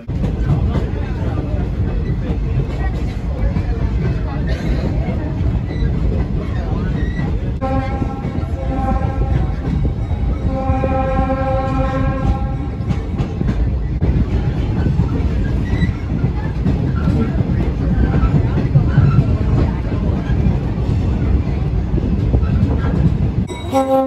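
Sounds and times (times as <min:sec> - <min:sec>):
train wheels clattering on track: 0:00.0 - 0:24.0
train horn blast: 0:07.6 - 0:09.7, 0:10.4 - 0:12.9, 0:23.5 - 0:24.0.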